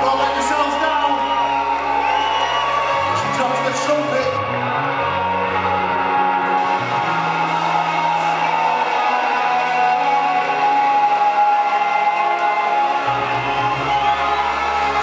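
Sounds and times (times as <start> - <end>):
deep bass line: 0.0 - 15.0.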